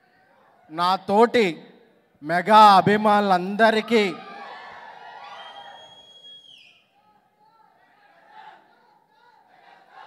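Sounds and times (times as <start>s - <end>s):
long whistle from audience: 5.3s - 7.0s.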